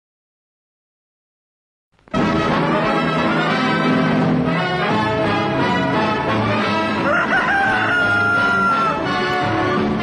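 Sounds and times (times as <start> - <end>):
brass theme music: 2.1 - 10.0
rooster crowing: 7.0 - 9.1.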